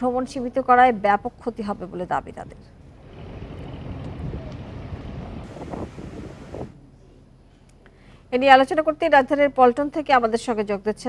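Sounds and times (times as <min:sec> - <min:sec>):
wind rumbling on microphone: 0:02.4 - 0:06.8
sea waves: 0:03.0 - 0:06.8.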